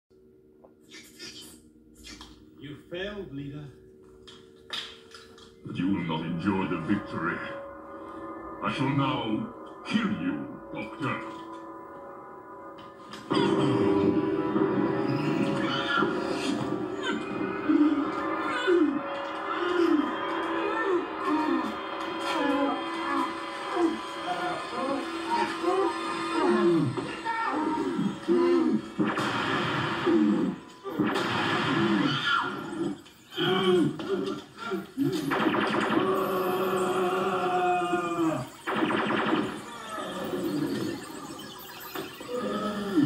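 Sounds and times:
incidental music with sustained tones: 1.5s - 43.0s
people crying and grunting: 13.1s - 43.0s.

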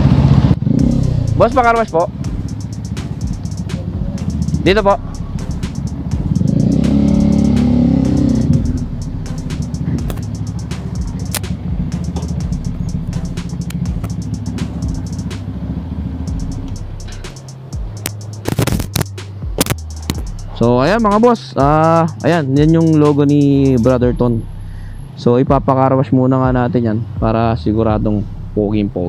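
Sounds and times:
motorcycle engine idling: 0.0s - 25.6s
sharp clicks: 9.5s - 12.4s, 13.4s - 15.4s, 16.4s - 20.3s.

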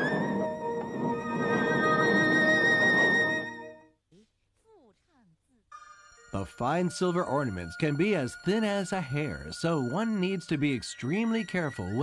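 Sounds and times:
background music: 0.0s - 3.9s, 5.7s - 12.0s.

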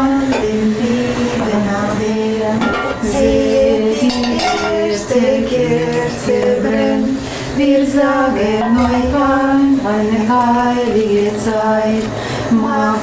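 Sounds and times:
women singing unaccompanied: 0.0s - 13.0s.

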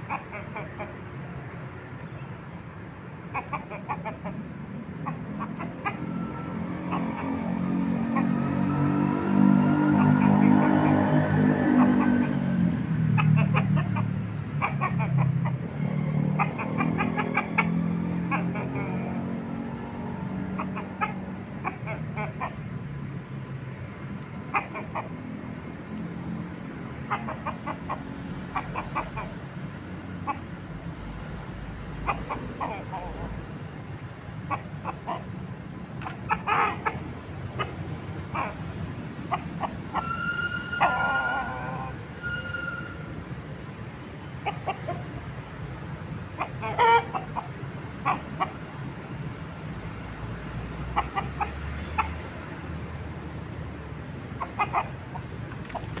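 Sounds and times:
rooster clucking: 0.0s - 1.0s, 3.3s - 4.4s, 5.0s - 8.4s, 9.6s - 12.4s, 13.0s - 19.4s, 20.4s - 22.7s, 24.4s - 25.1s, 27.0s - 29.5s, 30.1s - 30.6s, 32.0s - 33.4s, 34.4s - 35.3s, 36.0s - 43.0s, 44.3s - 45.4s, 46.3s - 48.6s, 50.8s - 52.4s, 54.3s - 56.0s
passing vehicle engine hum: 3.9s - 56.0s.

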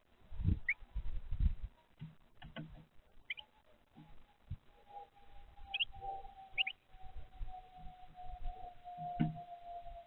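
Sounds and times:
bird chirping: 3.2s - 10.0s.

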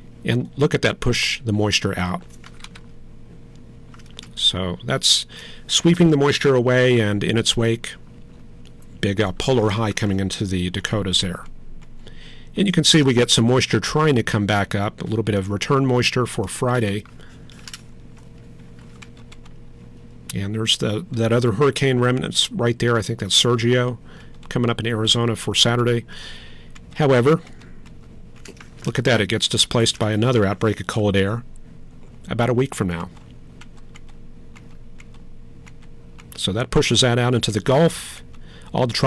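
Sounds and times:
low electrical hum: 0.0s - 39.0s
computer keys clicking: 2.3s - 2.9s, 3.9s - 4.3s, 17.5s - 19.6s, 33.1s - 36.4s.

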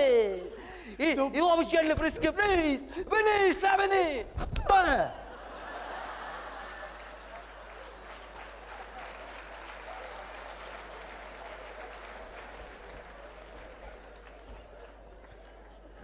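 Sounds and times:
audience applauding: 5.7s - 16.0s.

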